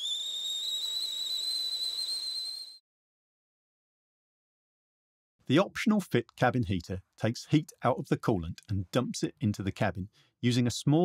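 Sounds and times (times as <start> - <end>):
high steam whistle: 0.0 - 2.8.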